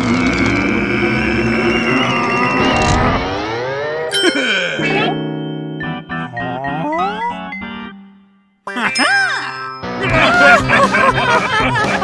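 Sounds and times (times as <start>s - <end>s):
low hum drone: 0.0s - 4.1s.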